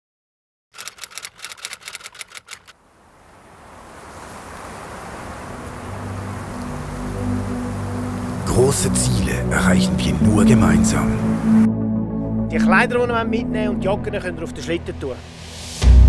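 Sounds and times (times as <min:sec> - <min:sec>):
typewriter keystrokes: 0:00.8 - 0:02.7
music with held low notes: 0:05.7 - 0:14.6.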